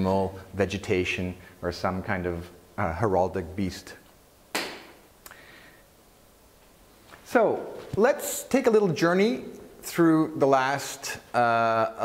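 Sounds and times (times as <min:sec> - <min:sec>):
sharp click: 0:04.5 - 0:05.4.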